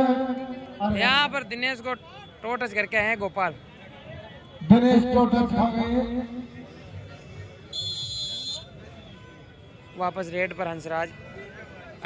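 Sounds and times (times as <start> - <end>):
faint crowd: 0.0 - 12.0
referee's whistle: 7.7 - 9.4.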